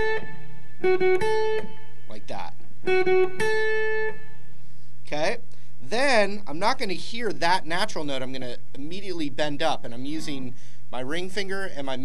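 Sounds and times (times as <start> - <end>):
electric guitar note ringing: 0.0 - 4.9
low amp hum: 0.0 - 12.0.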